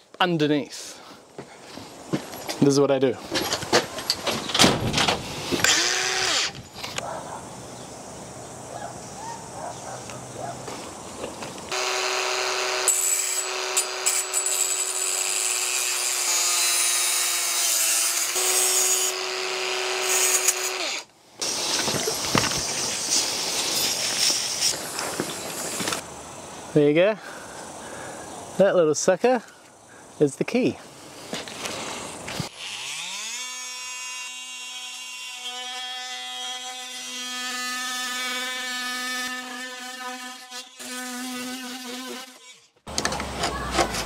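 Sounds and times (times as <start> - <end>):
angle grinder grinding metal: 5.6 - 7.0, 11.7 - 26.0, 32.5 - 42.8.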